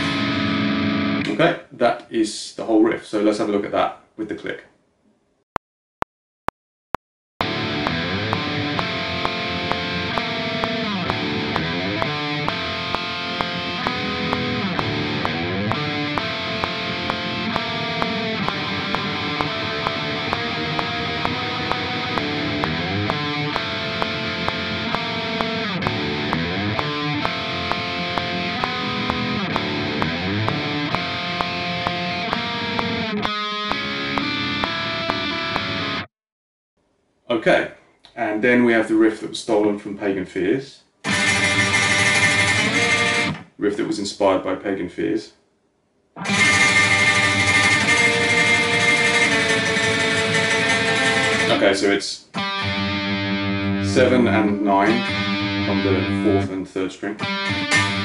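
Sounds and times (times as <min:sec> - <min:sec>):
distorted electric guitar riff: 0:00.0 - 0:01.4, 0:07.4 - 0:36.1, 0:41.0 - 0:43.5, 0:46.2 - 0:58.0
metronome click: 0:07.8 - 0:35.8, 0:41.1 - 0:43.4, 0:46.2 - 0:51.6, 0:57.2 - 0:58.0.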